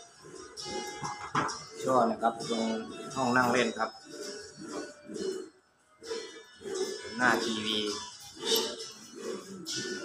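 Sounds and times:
background music: 0.0s - 10.0s
man speaking: 7.1s - 8.1s.

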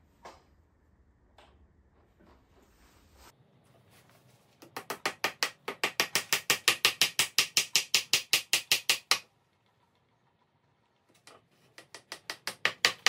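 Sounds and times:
hammer tapping nail into wood: 4.6s - 9.2s, 11.8s - 13.0s.

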